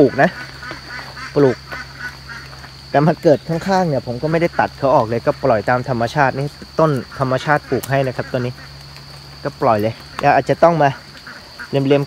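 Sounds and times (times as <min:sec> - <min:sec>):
man talking: 0:00.0 - 0:00.4, 0:01.3 - 0:01.6, 0:02.9 - 0:08.6, 0:09.4 - 0:11.0, 0:11.7 - 0:12.0
ducks quacking faintly: 0:00.0 - 0:12.0
high-pitched insect drone: 0:00.0 - 0:12.0.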